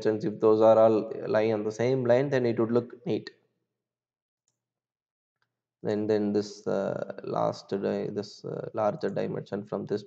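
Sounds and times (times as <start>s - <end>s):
man speaking: 0.0s - 3.3s, 5.9s - 10.0s.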